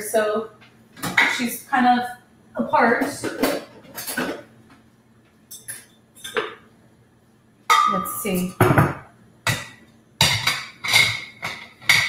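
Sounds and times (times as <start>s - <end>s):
kitchenware clattering on counter: 3.0s - 4.5s, 5.5s - 6.7s, 7.7s - 12.0s.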